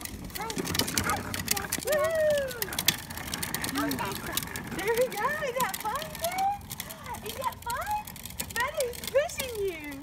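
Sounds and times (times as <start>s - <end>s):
plastic wheels rattling on concrete: 0.0s - 10.0s.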